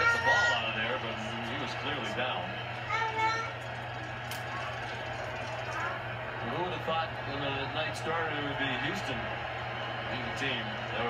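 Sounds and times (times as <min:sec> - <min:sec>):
sports broadcast voices from tv: 0:00.0 - 0:11.0.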